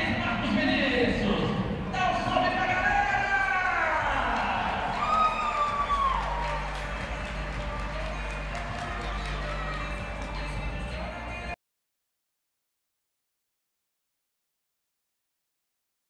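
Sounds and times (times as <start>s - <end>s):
music with steady beat: 1.8s - 11.6s.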